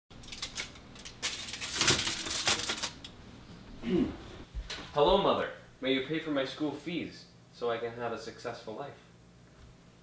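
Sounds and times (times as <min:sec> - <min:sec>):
foil scraping over oven rack: 0:00.2 - 0:03.0.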